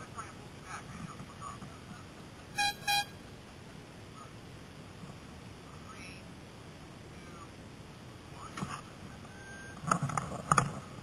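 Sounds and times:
low steady rumble: 0:00.0 - 0:09.8
high-pitched horn toots: 0:02.6 - 0:03.2.

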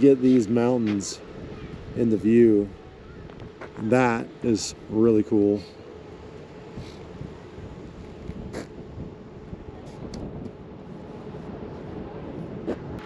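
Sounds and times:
outdoor background rush: 0:00.0 - 0:13.0.

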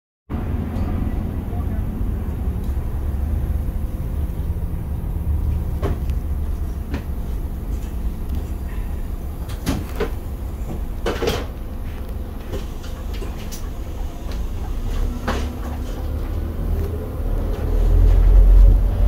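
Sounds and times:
bus engine rumble: 0:00.3 - 0:19.0.

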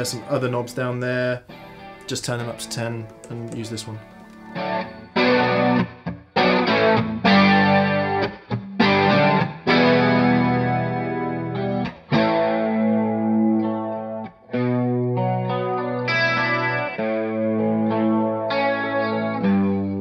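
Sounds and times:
electric guitar strummed chords: 0:00.0 - 0:20.0.

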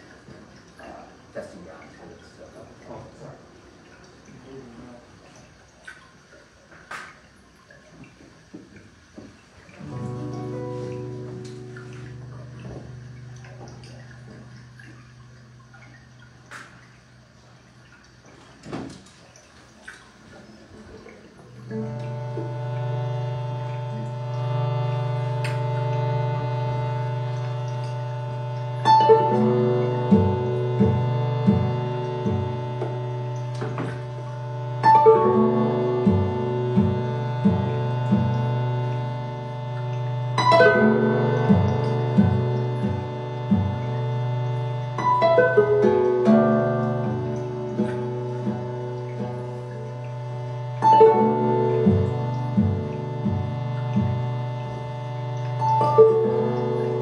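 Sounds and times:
faint clicks and drips: 0:00.0 - 0:57.0
ambient guitar chords: 0:09.7 - 0:17.9, 0:21.4 - 0:57.0
low pulsing note: 0:09.8 - 0:17.3, 0:21.5 - 0:57.0
sustained guitar drone: 0:09.8 - 0:17.5, 0:21.4 - 0:57.0.

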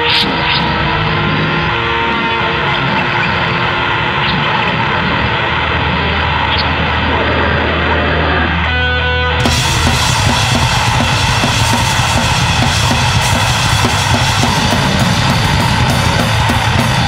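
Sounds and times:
distorted guitar grindcore music: 0:00.0 - 0:17.0.

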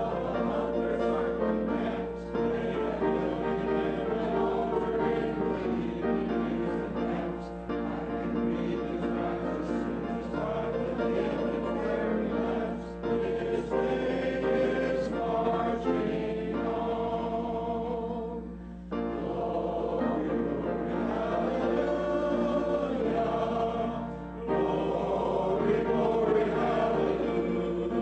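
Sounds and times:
congregation singing a hymn: 0:00.0 - 0:28.0.

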